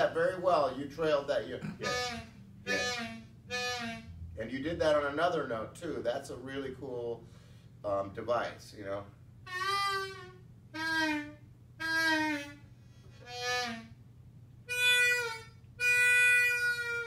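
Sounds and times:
blues harmonica playing: 1.1s - 5.0s, 9.4s - 17.0s.

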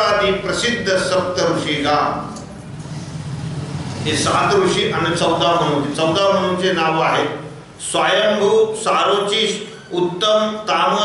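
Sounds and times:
man speaking: 0.0s - 2.4s, 4.0s - 11.0s
low background hum: 0.0s - 11.0s.

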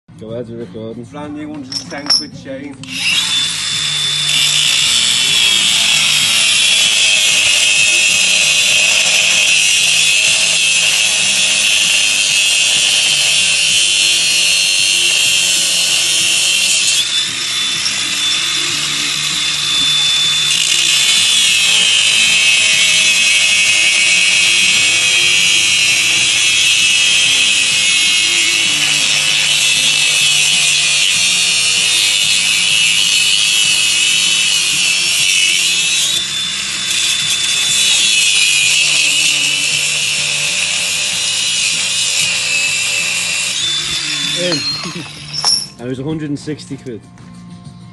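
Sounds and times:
angle grinder cutting steel: 1.7s - 45.8s.

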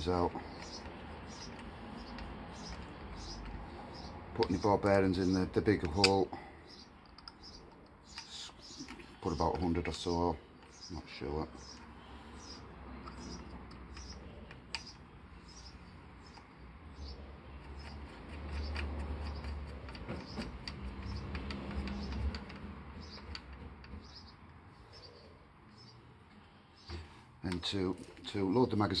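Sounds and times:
small metallic clicks: 5.7s - 9.2s, 11.6s - 16.5s, 17.6s - 25.0s.

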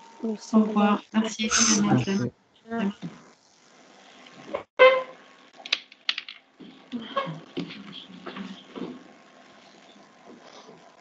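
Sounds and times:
computer keyboard typing: 5.6s - 6.4s.

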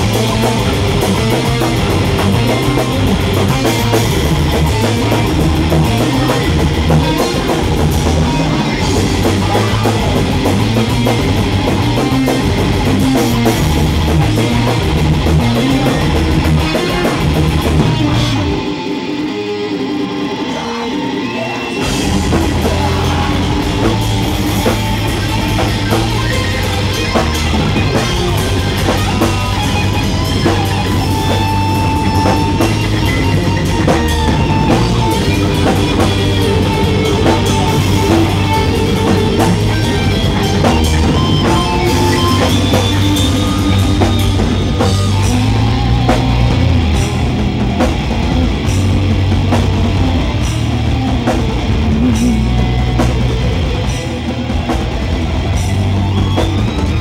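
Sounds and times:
heavy metal band playing: 0.0s - 57.0s.

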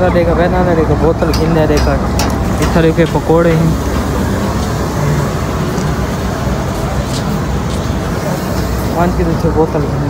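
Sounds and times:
rumbling train platform noise: 0.0s - 10.0s.

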